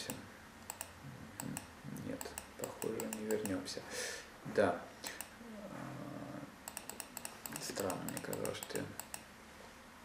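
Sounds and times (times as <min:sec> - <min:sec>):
computer key clicks: 0:00.0 - 0:03.6, 0:05.1 - 0:05.4, 0:06.6 - 0:09.3
low murmured hum: 0:00.0 - 0:10.0.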